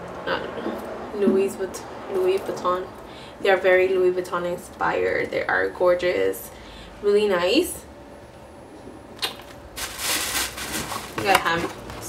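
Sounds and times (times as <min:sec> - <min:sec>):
rustling and handling noise: 0:09.2 - 0:12.0.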